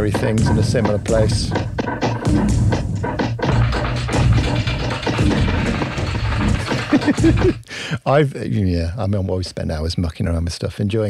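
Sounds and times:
low bass: 0:00.0 - 0:07.6
percussive hits: 0:00.0 - 0:07.6.

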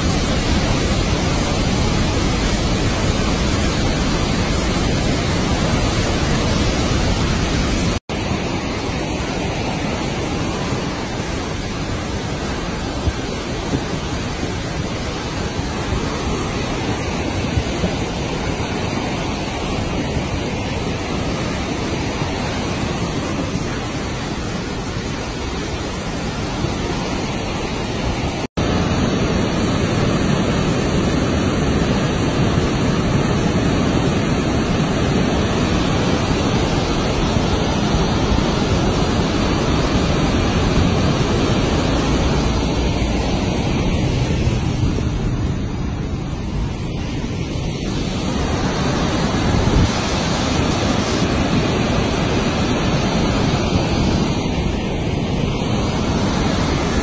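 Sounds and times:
river rushing: 0:00.0 - 0:57.0.

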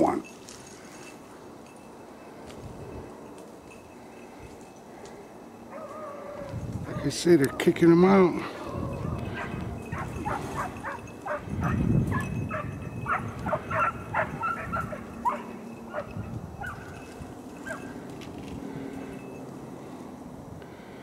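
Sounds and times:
hunting dogs barking and yipping: 0:00.7 - 0:20.0.

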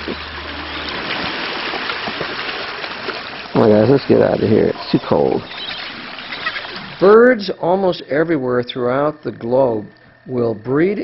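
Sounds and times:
seawater washing over stones: 0:00.0 - 0:07.1.

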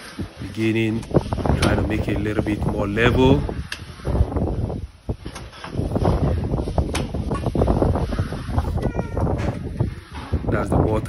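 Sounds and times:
wind buffeting microphone: 0:00.0 - 0:11.0
faint voice: 0:08.7 - 0:09.6.

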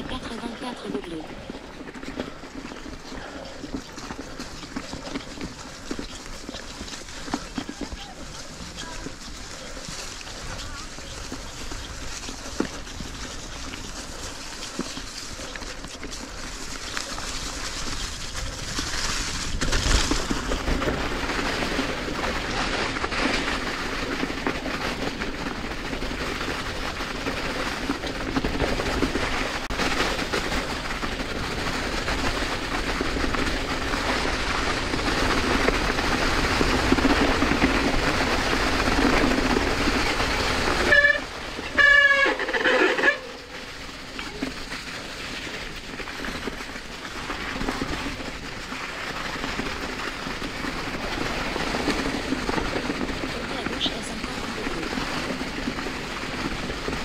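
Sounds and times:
bike tyres rumbling on dirt: 0:00.0 - 0:57.0.

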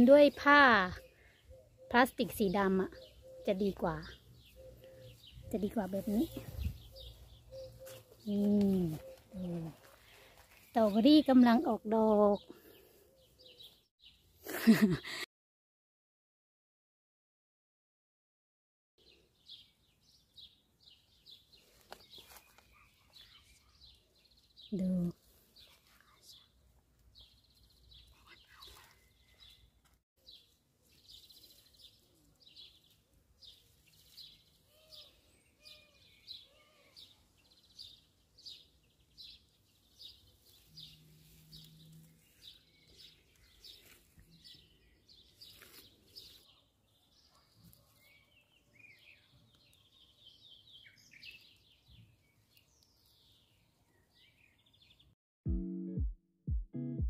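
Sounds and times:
bird chirping: 0:00.0 - 0:11.7, 0:19.0 - 0:55.2
plucked guitar music: 0:55.5 - 0:57.0.

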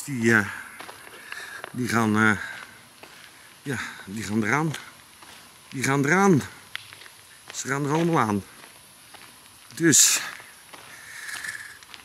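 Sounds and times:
man speaking: 0:00.0 - 0:00.7, 0:01.7 - 0:02.6, 0:03.6 - 0:04.9, 0:05.7 - 0:06.6, 0:07.6 - 0:08.5, 0:09.7 - 0:10.4
soft hiss: 0:00.0 - 0:12.0
faint ticks: 0:08.6 - 0:12.0.

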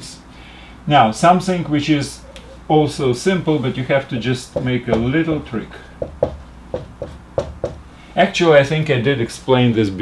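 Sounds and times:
marker tapping on whiteboard: 0:04.5 - 0:05.2, 0:06.0 - 0:07.8.

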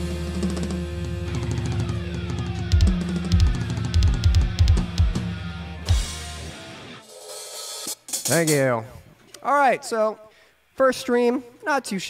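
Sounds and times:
metal band playing: 0:00.0 - 0:08.8.

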